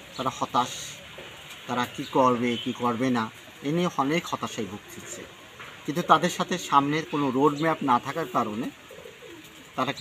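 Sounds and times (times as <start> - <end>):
man talking: 0.1 - 8.8, 9.8 - 10.0
dove cooing: 4.8 - 10.0.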